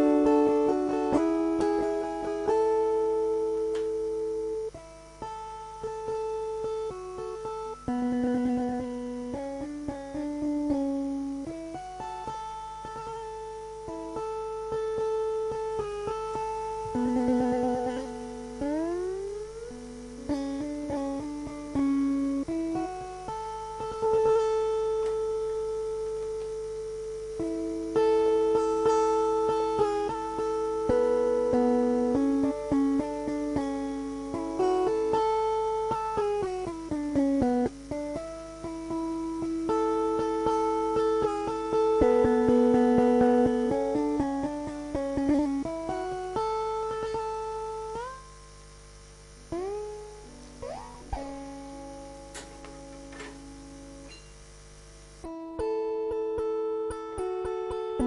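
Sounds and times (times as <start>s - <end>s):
slide lyre notes gliding: 0.0s - 58.0s.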